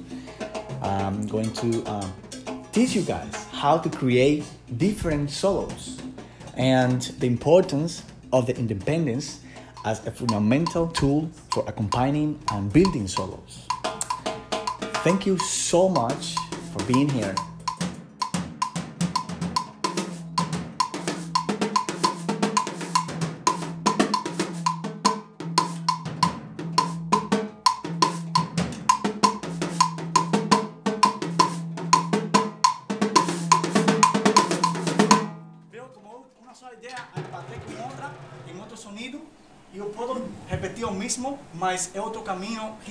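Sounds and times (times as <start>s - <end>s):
drum kit playing: 0.0s - 35.9s, 36.8s - 42.9s
cowbell repeating note: 9.5s - 24.8s.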